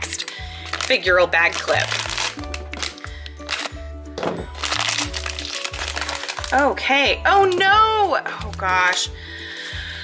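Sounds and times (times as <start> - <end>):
foil bag crinkling: 0.0 - 3.8, 4.4 - 9.9
background music with bass line: 2.1 - 6.2.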